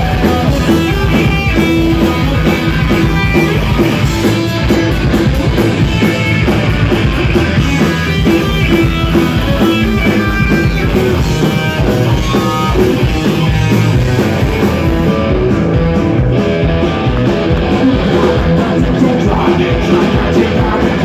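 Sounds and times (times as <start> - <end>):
drums: 0.0 - 21.0
electric bass: 0.0 - 21.0
electric guitars: 0.0 - 21.0.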